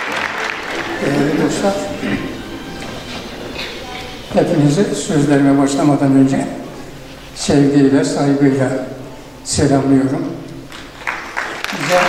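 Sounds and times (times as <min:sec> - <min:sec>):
audience applause: 0:00.0 - 0:07.4, 0:10.1 - 0:12.0.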